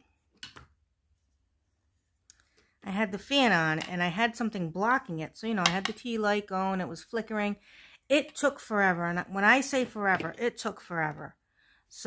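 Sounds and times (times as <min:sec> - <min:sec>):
person speaking: 0:02.8 - 0:11.3.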